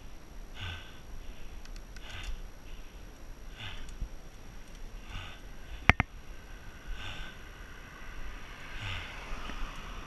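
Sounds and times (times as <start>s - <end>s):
person breathing hard: 0.0s - 10.0s.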